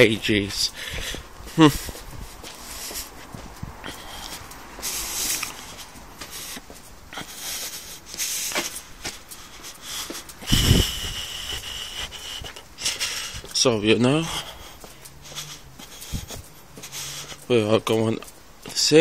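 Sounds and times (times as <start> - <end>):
footsteps: 0.0 - 19.0.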